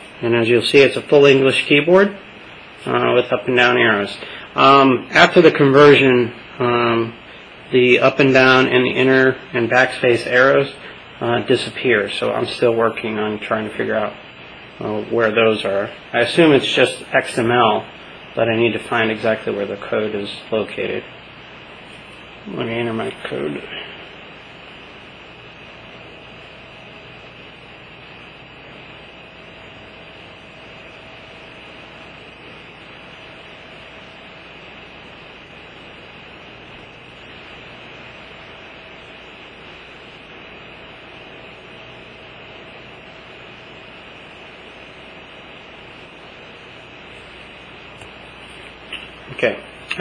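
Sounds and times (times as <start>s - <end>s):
steady background hiss: 0.0s - 50.0s.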